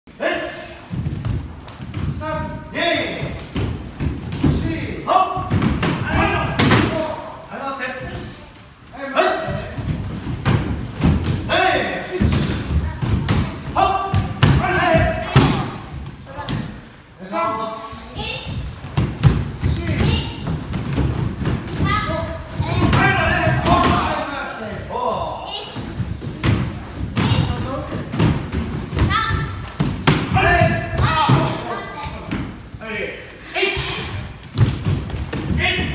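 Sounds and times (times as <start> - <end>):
people shouting: 5.1 - 7.0, 30.3 - 31.6.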